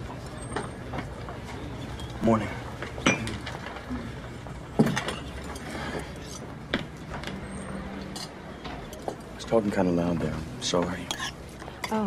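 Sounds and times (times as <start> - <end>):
diner background noise: 0.0 - 12.0.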